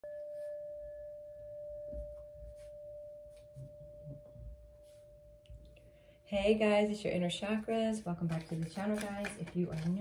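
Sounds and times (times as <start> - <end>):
singing bowl ringing: 0.0 - 6.6.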